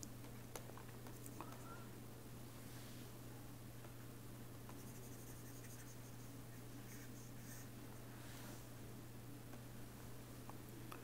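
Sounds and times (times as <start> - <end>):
low electrical hum: 0.0 - 11.0
stylus scratching on pen tablet: 4.7 - 7.7.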